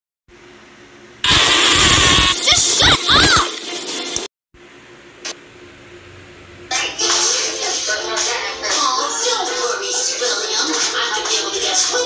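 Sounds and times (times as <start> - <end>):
distorted cartoon shout: 1.2 - 3.6.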